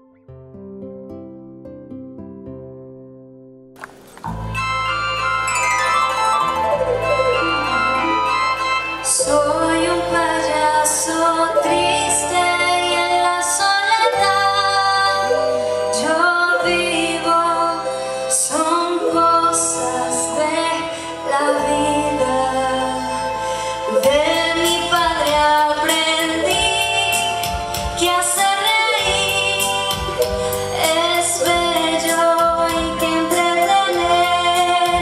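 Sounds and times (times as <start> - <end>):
instrumental accompaniment with bass: 3.8 - 35.0
woman singing into microphone: 9.0 - 35.0.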